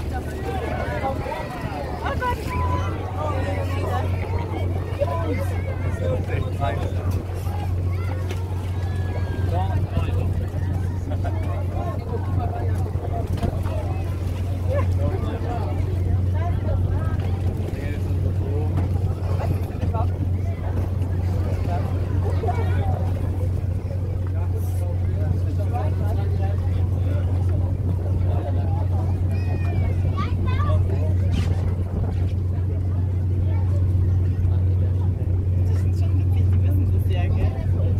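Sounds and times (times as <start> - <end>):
boat engine droning: 0.0 - 37.9
chatter of many voices: 0.0 - 37.9.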